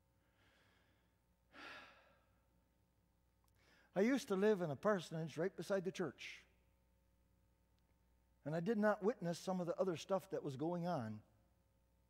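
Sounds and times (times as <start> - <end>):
man breathing out: 0.2 - 2.4.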